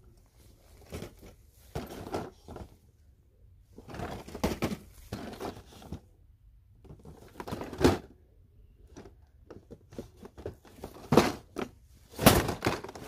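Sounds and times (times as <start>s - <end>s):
cardboard boxes rustling and knocking: 0.6s - 2.8s, 3.8s - 6.0s, 6.8s - 8.1s, 8.9s - 13.0s.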